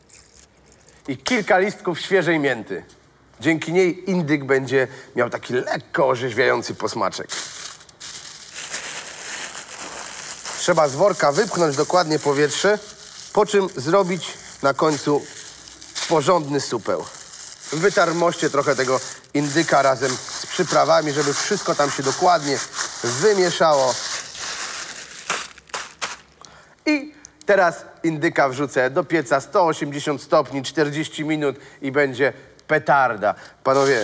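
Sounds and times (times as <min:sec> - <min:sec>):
plastic bag crinkling: 0:00.0 - 0:01.1, 0:06.6 - 0:26.5, 0:33.7 - 0:34.0.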